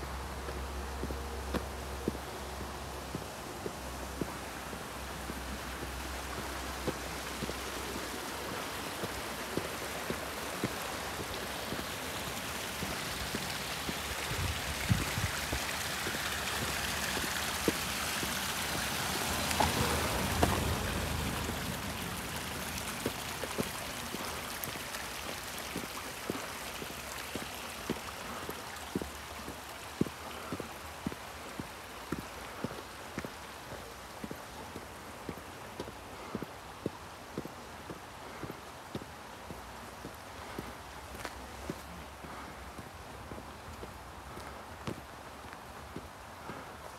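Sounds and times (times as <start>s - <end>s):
footsteps on paved road: 0.0s - 46.9s
mountain stream rushing: 0.0s - 46.9s.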